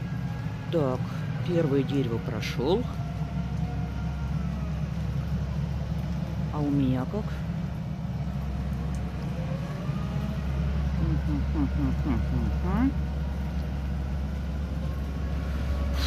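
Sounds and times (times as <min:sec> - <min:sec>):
excavator diesel engine rumbling: 0:00.0 - 0:16.0.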